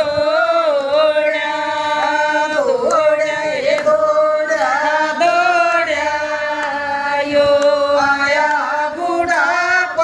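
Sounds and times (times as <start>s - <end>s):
women singing unaccompanied: 0.0s - 10.0s.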